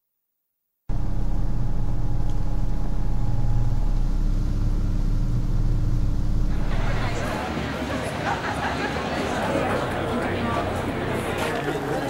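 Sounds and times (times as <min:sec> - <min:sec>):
held hum tones: 0:00.9 - 0:07.4
low rumbling drone: 0:00.9 - 0:07.5
crowd chatter: 0:06.5 - 0:12.0.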